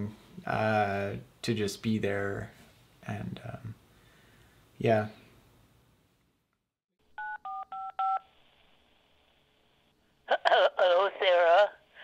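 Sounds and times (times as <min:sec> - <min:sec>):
telephone keypad beeps: 0:07.2 - 0:08.2.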